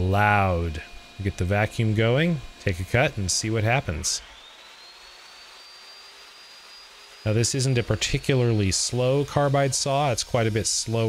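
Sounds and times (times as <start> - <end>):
saw motor whining: 0.0 - 11.0.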